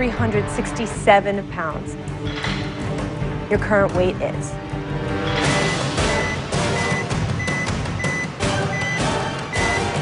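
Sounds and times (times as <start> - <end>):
dramatic suspense music: 0.0 - 10.0.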